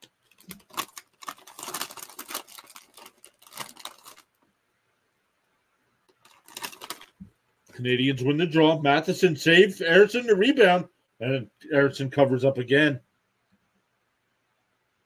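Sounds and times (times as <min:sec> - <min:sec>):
rustling: 0:00.0 - 0:04.4, 0:06.1 - 0:07.8
person speaking: 0:07.7 - 0:13.0.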